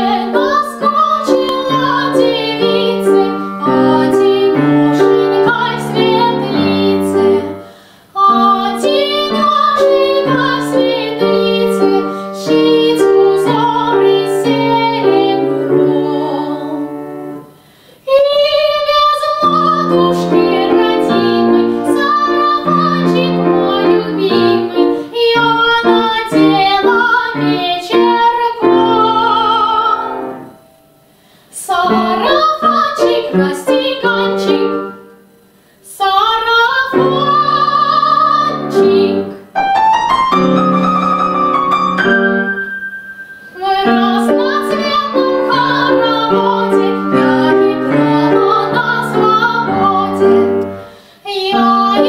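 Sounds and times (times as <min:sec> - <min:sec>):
piano accompaniment: 0:00.0 - 0:17.6, 0:18.6 - 0:35.2, 0:36.8 - 0:52.0
young woman singing: 0:00.0 - 0:30.6, 0:31.5 - 0:39.5, 0:43.5 - 0:52.0
grand piano chord: 0:39.6 - 0:48.1.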